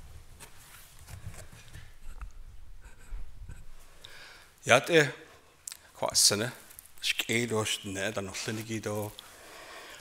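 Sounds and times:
soft rustles and clicks: 0.0s - 4.0s, 6.4s - 7.2s.

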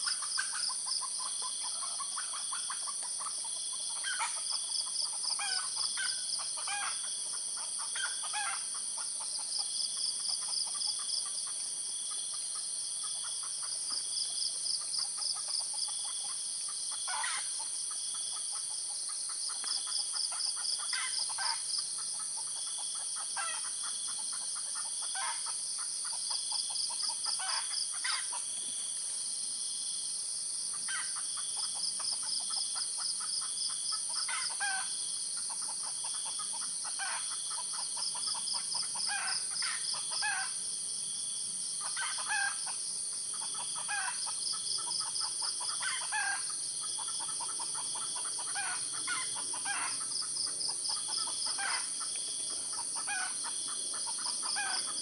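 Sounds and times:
bird calls: 0.0s - 9.6s, 41.8s - 55.0s
junglefowl calls: 0.0s - 28.6s, 30.7s - 40.6s, 41.8s - 55.0s
insect chorus buzzing trill: 0.0s - 55.0s.

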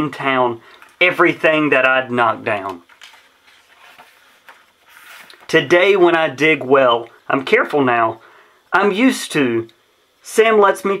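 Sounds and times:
paper page turning: 2.5s - 5.6s.

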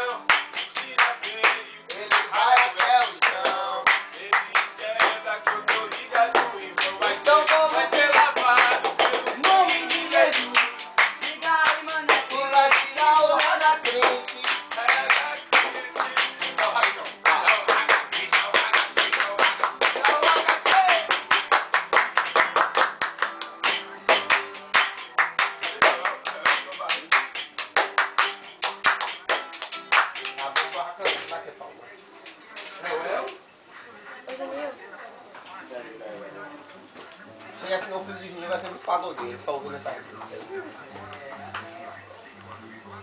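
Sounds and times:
men singing: 0.0s - 21.2s
rhythmic hand claps and slaps: 0.0s - 31.4s.

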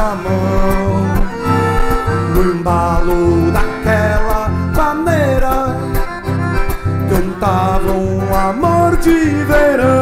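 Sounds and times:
accordion melody: 0.0s - 10.0s
bouncing bass rhythm: 0.0s - 10.0s
strummed acoustic guitar: 0.0s - 10.0s.

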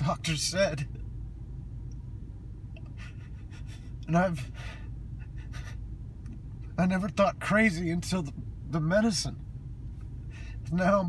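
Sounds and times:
car cabin hum: 0.0s - 11.0s
man breathing and sniffing: 2.8s - 5.8s, 10.2s - 10.7s.

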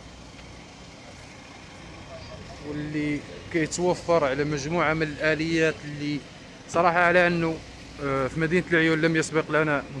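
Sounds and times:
outdoor background noise: 0.0s - 10.0s
truck engines idling: 0.0s - 10.0s.

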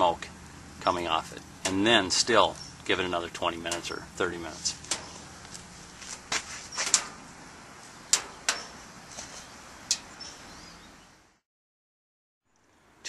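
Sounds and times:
low steady fire hiss: 0.0s - 10.5s.

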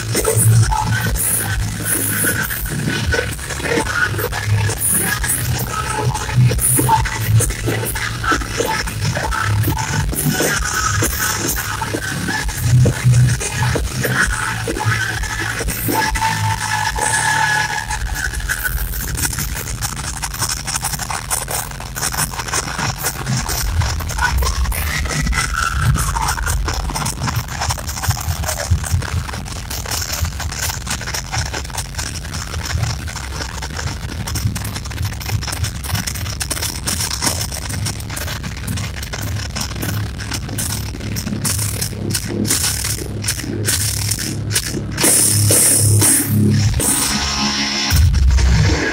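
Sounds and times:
heavy metal band playing live: 0.0s - 48.9s.

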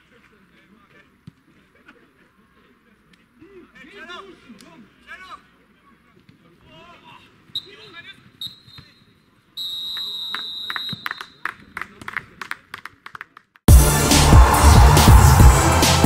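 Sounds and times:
referee's whistle blasts: 7.5s - 11.5s
loud music: 13.7s - 16.0s.

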